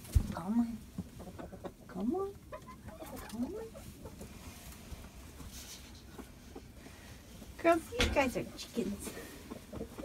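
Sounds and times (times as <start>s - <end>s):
hens clucking: 0.2s - 10.0s.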